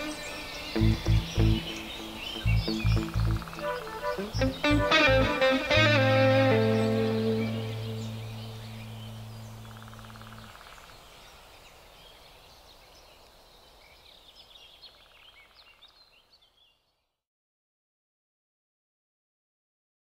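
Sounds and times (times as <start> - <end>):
low music chord: 0.0 - 10.5
birds chirping: 0.0 - 17.0.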